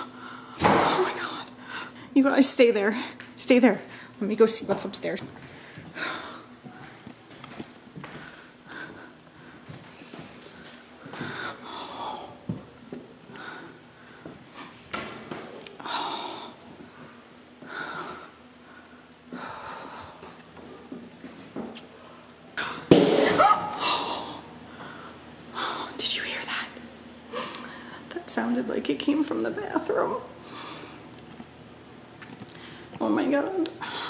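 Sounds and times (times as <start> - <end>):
person breathing: 0.0 - 0.6, 8.0 - 12.6.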